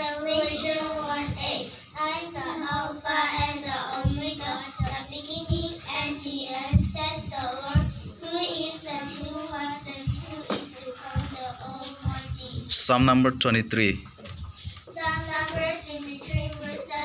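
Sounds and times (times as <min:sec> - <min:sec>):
girls chanting through pa: 0:00.0 - 0:12.7
low thumps: 0:00.1 - 0:17.0.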